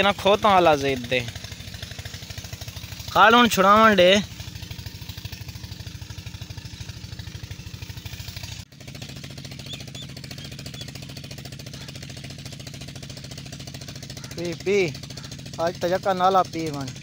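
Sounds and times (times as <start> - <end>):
engine running with knocking beat: 0.0 - 17.0.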